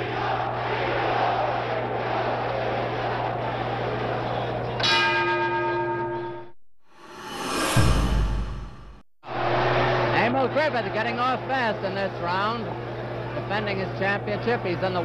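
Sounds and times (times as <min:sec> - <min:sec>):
arena crowd noise: 0:00.0 - 0:04.8, 0:09.2 - 0:15.0
boxing ring bell: 0:04.8 - 0:06.5
noisy swell with low rumble: 0:07.0 - 0:09.7.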